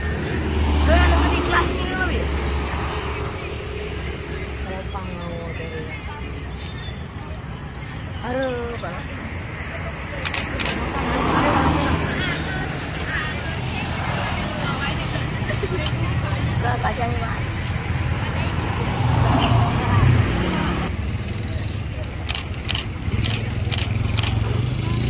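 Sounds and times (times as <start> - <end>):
motorbike passing: 0.0 - 6.5, 9.0 - 25.0
low road rumble: 0.0 - 25.0
vehicle passing: 0.0 - 25.0.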